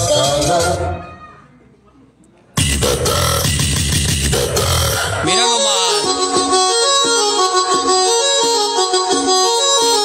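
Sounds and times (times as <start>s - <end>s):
bass-heavy music with processed voice: 0.0s - 1.0s, 2.6s - 7.0s.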